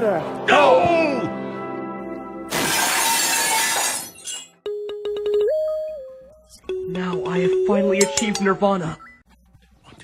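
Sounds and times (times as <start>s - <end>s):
loud crash: 2.5s - 4.1s.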